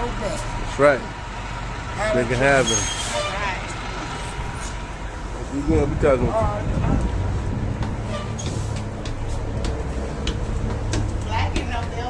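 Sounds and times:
steady low rumble: 0:03.7 - 0:12.0
footsteps climbing stairs: 0:06.9 - 0:12.0
sharp knocks: 0:07.7 - 0:12.0.

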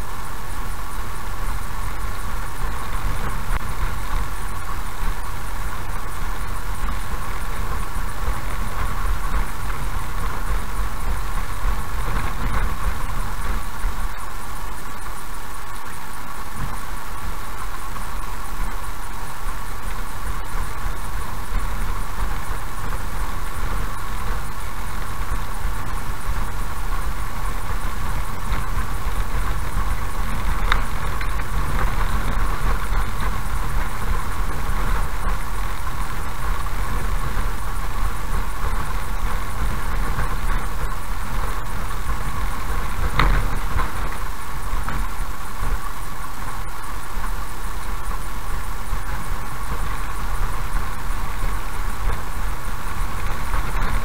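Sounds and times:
road rumble: 0:00.0 - 0:54.0.

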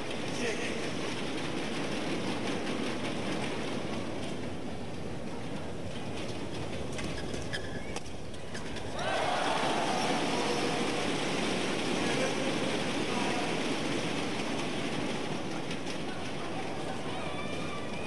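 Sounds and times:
shoe squeaks: 0:07.0 - 0:08.9
arena crowd noise: 0:08.0 - 0:18.0
crowd cheering: 0:08.9 - 0:14.3, 0:16.2 - 0:18.0.

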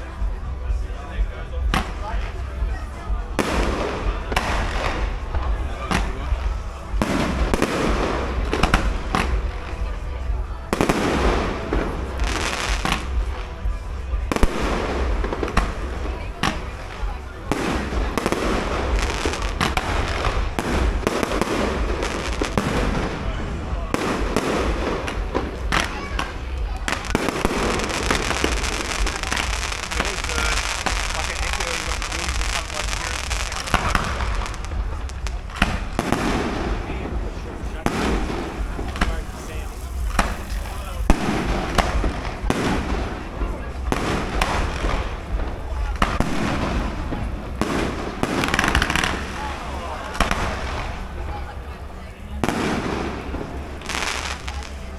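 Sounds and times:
fireworks bangs and crackling: 0:00.0 - 0:54.9
ground fountains hissing: 0:00.0 - 0:54.9.

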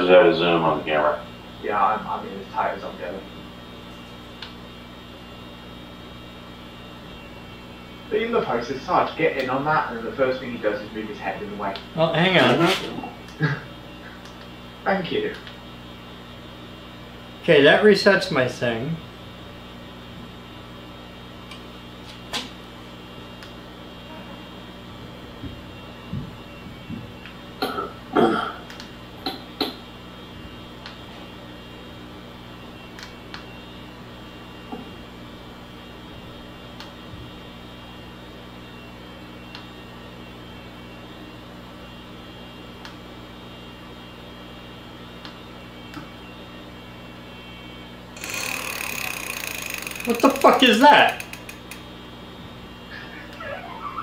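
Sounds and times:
steady electrical hum: 0:00.0 - 0:54.0.

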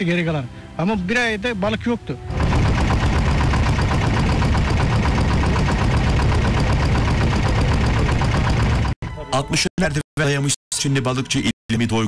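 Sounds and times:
boat motor running: 0:02.3 - 0:09.0.

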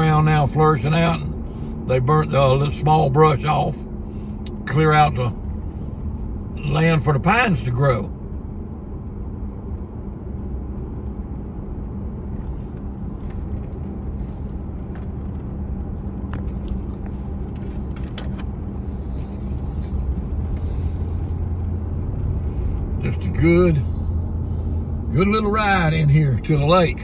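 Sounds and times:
vehicle engine and road noise: 0:00.0 - 0:27.0.

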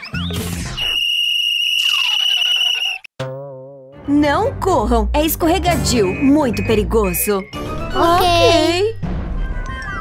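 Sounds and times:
whistle blast: 0:00.7 - 0:03.1.

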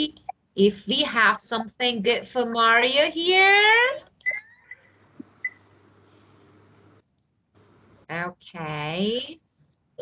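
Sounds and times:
faint steady hum and hiss: 0:00.0 - 0:10.0.

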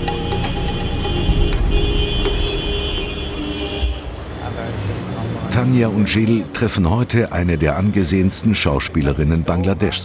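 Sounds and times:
high steady horn-like tone: 0:00.0 - 0:04.4
traffic rumble: 0:00.0 - 0:10.0.

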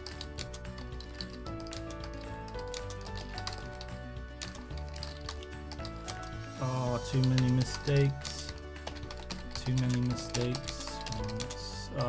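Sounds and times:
background music with held notes: 0:00.0 - 0:12.0
computer keyboard keystrokes clicking: 0:00.0 - 0:12.0.

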